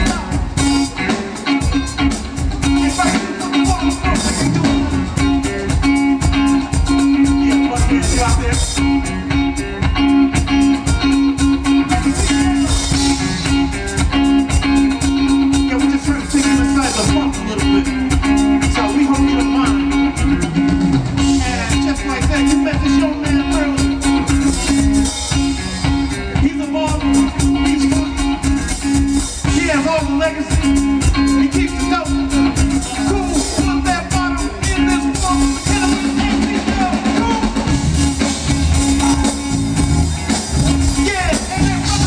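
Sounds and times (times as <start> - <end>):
drums: 0.0 - 42.0
electric rhythm guitar: 0.0 - 42.0.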